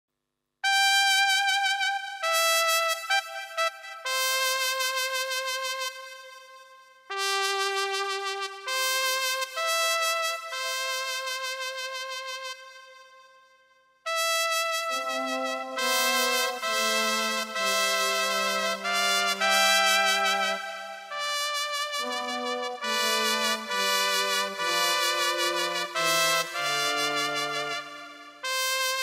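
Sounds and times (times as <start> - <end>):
keyboard playing brass melody: 0.6 - 13.3, 14.1 - 29.0
lower accompanying notes: 14.9 - 20.9.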